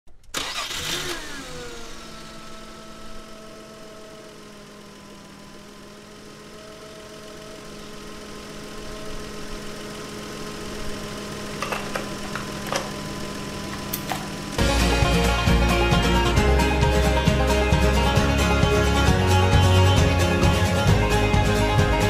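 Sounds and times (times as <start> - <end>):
van engine starting and idling: 0.1 - 22.0.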